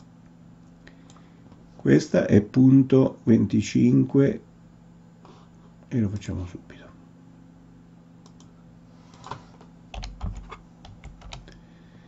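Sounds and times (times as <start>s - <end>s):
computer keyboard keystrokes: 9.9s - 11.6s.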